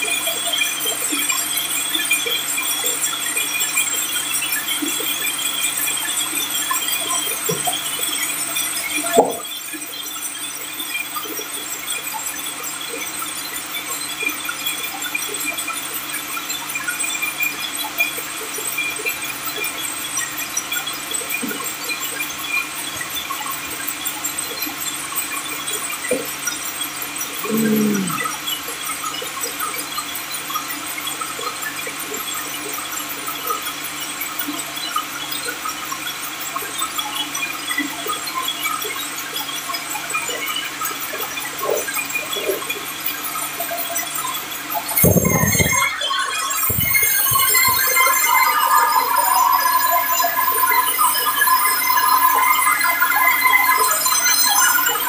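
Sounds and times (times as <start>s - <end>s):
saw blade whine cutting log: 44.9s - 48.1s.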